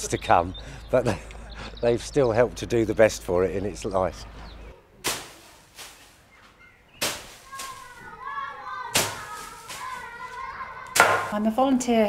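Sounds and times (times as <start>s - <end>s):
flail thudding on straw: 5.0s - 6.3s, 7.0s - 8.1s, 8.9s - 11.4s
faint voices: 7.2s - 12.0s.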